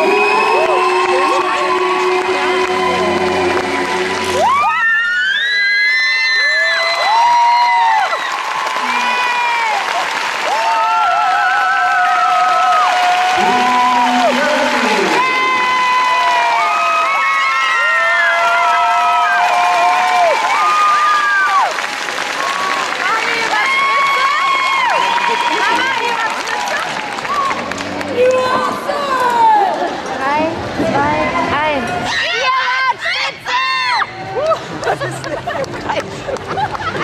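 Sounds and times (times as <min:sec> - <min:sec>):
crowd cheering: 0:00.0 - 0:37.0.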